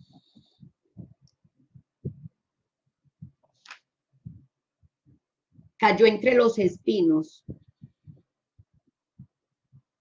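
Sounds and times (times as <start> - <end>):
faint low thumps: 0.2 - 3.5, 4.1 - 5.8.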